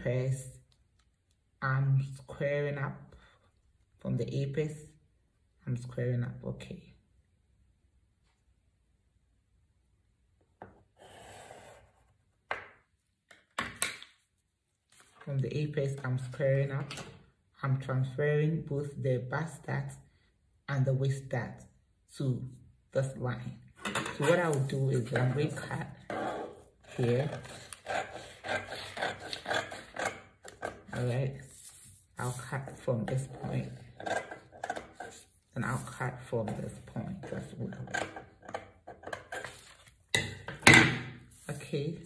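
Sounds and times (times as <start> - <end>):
pencil scratching along ruler: 11.0 - 12.2, 24.2 - 37.5.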